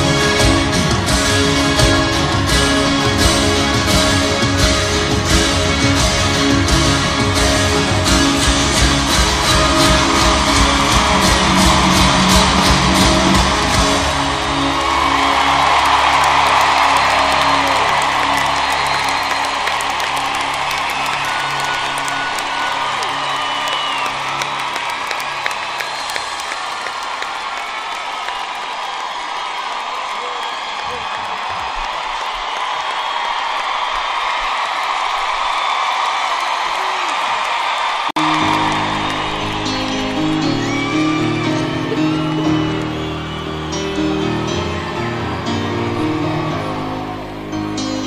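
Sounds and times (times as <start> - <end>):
rock band held chord: 0.0 - 23.6
crowd cheering and applauding: 0.0 - 48.0.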